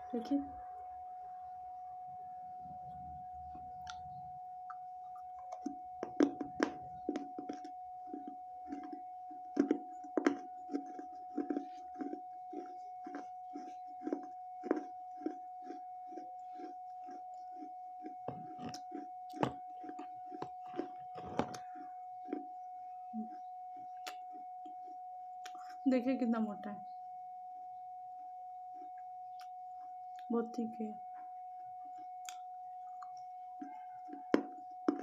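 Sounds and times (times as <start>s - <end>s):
faint steady tone: 0.0s - 35.0s
crunching chews of clay: 4.7s - 22.6s.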